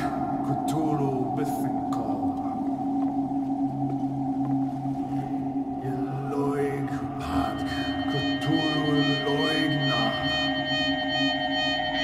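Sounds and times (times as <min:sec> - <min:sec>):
dark synth drone: 0:00.0 - 0:12.0
pulsing low synth note: 0:00.0 - 0:12.0.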